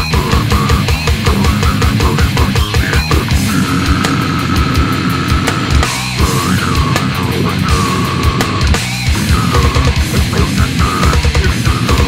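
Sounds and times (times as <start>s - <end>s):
death metal music: 0.0s - 12.0s.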